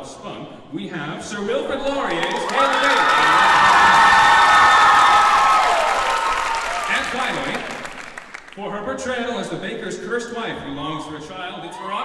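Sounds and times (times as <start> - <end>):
audience applauding: 2.0 - 8.6
high-pitched cheering: 2.1 - 7.7.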